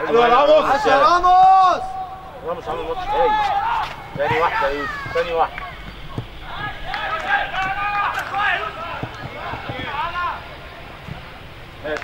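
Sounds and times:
men shouting: 0.0s - 10.8s.

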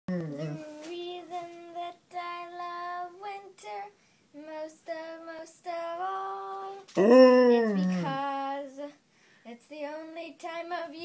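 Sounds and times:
girl singing unaccompanied: 0.2s - 11.0s.

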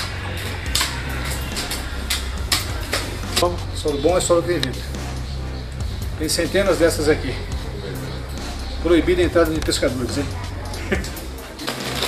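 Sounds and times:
steady low rumble: 0.0s - 11.6s.

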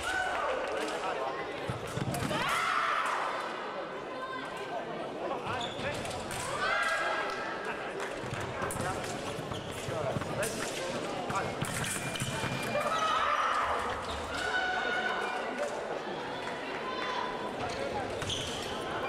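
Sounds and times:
voices and shouts echoing: 9.8s - 19.0s.

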